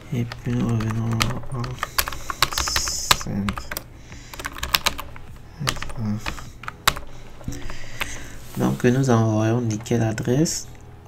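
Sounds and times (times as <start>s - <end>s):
typing on computer keyboard: 0.2s - 8.2s.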